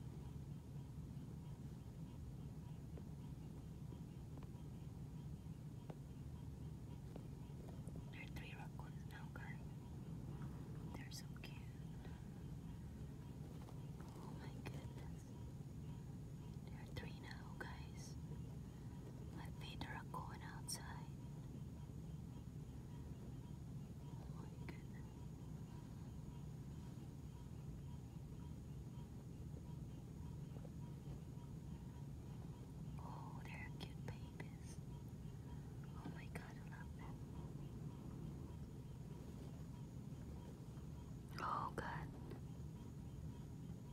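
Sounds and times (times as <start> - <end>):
low steady hum: 0.0 - 43.9
person whispering: 8.1 - 9.8, 10.9 - 12.2, 14.0 - 15.4, 16.6 - 18.2, 19.4 - 21.2, 24.0 - 25.1, 32.9 - 34.8, 35.6 - 37.2, 41.3 - 42.3.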